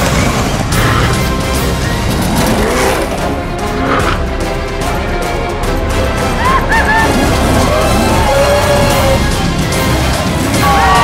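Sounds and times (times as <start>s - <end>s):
loud background music: 0.0s - 11.0s.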